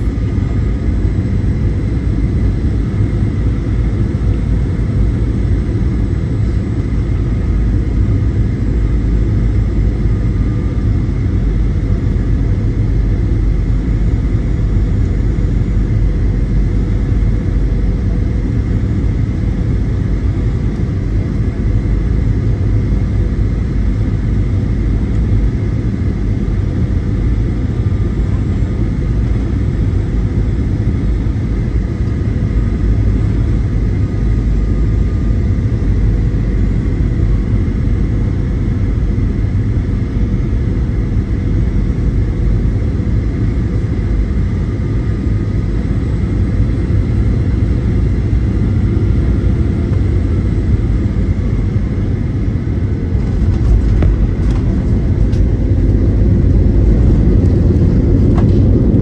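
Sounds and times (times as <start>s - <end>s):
airliner cabin engine rumble: 0.0s - 59.0s.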